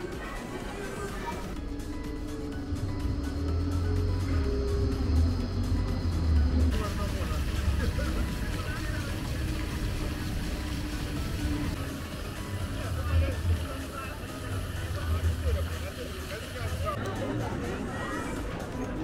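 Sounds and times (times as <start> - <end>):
people talking: 0.0 - 1.6, 6.7 - 10.7, 12.4 - 19.0
low traffic rumble: 0.7 - 17.0
spraying water hiss: 6.7 - 17.0.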